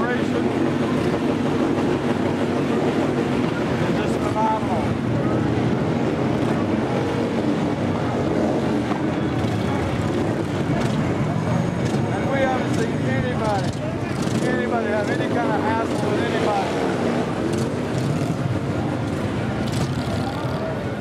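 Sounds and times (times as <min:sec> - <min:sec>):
crowd chatter: 0:00.0 - 0:21.0
motorcycle engines rumbling: 0:00.0 - 0:21.0.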